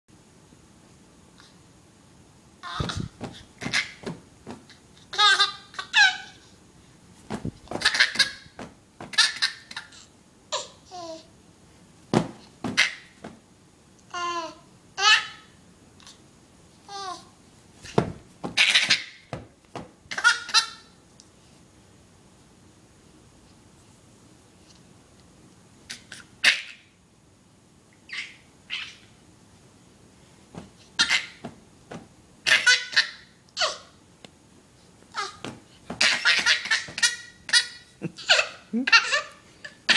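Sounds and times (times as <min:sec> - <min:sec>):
baby laughing: 0:02.6 - 0:04.2, 0:05.1 - 0:06.4, 0:07.7 - 0:11.2, 0:12.7 - 0:13.2, 0:18.5 - 0:19.3, 0:20.1 - 0:20.9, 0:31.0 - 0:31.5, 0:32.4 - 0:33.9, 0:35.2 - 0:39.9.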